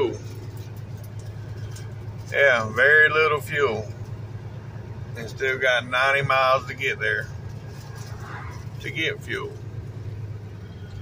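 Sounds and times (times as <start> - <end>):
diesel truck engine droning: 0.0 - 11.0.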